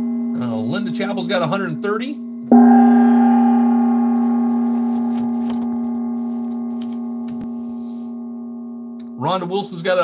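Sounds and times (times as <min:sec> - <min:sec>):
gong ringing: 0:02.3 - 0:09.5.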